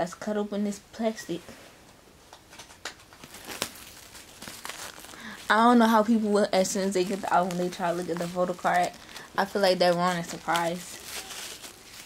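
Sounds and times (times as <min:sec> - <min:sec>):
plastic shrink-wrap crinkling: 0:02.5 - 0:12.0.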